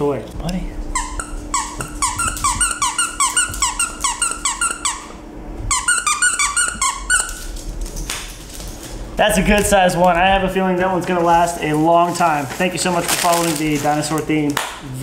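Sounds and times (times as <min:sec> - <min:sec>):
dog toy squeaking: 0:00.9 - 0:07.5.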